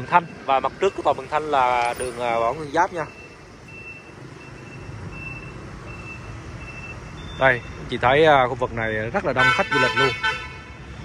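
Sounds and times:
traffic engines humming: 0:00.0 - 0:11.0.

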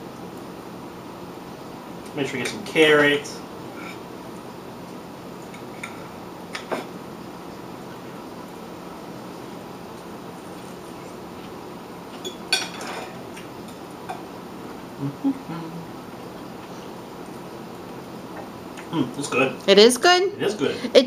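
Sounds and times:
low room hum: 0:00.0 - 0:21.0
person murmuring: 0:15.0 - 0:16.0.

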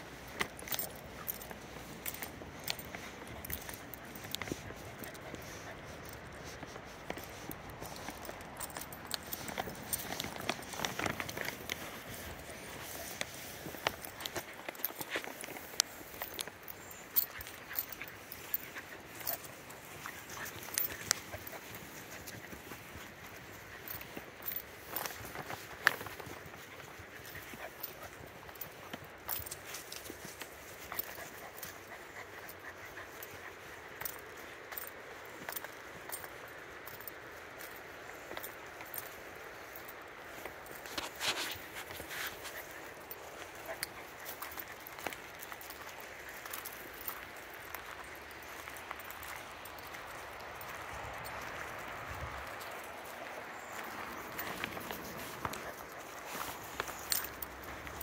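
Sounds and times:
footsteps on gravel: 0:00.0 - 0:36.4, 0:38.1 - 0:58.0
puppy paws clicking on gravel: 0:00.0 - 0:58.0.

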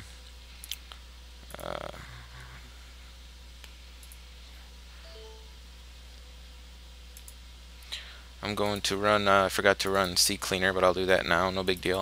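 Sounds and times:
low electrical hum: 0:00.0 - 0:12.0
faint electronic alert chime: 0:05.0 - 0:05.6.

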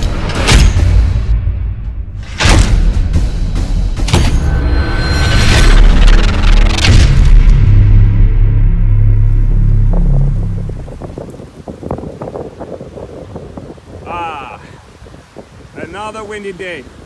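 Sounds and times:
heavy booming hits: 0:00.0 - 0:04.6, 0:05.5 - 0:11.2
deep low drone: 0:04.4 - 0:11.1
wind noise on microphone: 0:09.1 - 0:17.0.

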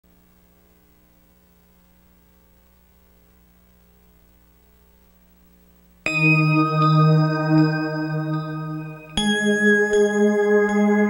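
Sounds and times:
faint electrical mains hum: 0:00.1 - 0:11.0.

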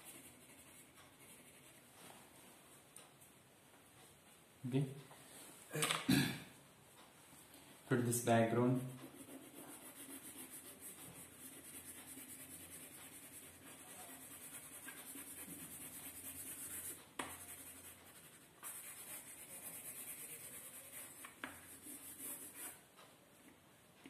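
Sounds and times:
crayon rubbing on paper: 0:00.0 - 0:01.8, 0:08.8 - 0:22.8.

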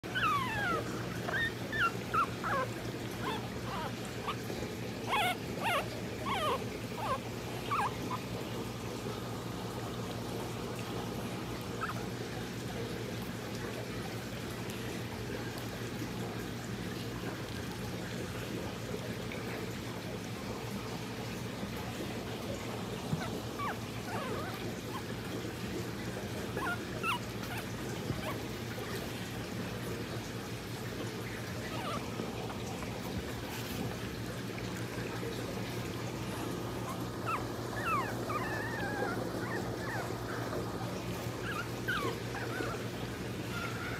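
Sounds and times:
puppies whimpering: 0:00.0 - 0:09.1, 0:11.4 - 0:12.4, 0:22.6 - 0:29.2, 0:31.0 - 0:33.9, 0:34.9 - 0:43.9.

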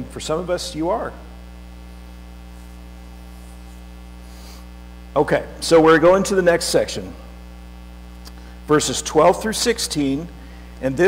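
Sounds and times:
low electrical mains hum: 0:00.0 - 0:11.0.

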